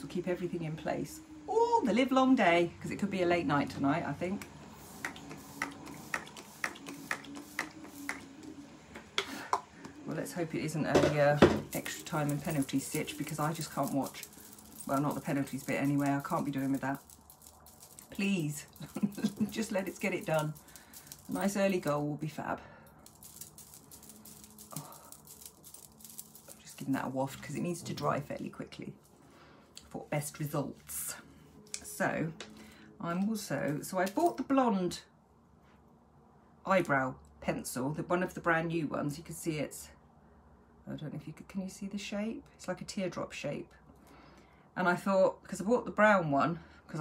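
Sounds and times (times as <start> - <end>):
spray bottle spritzes: 4.8 - 8.4
hands fanning swishes: 4.8 - 8.6.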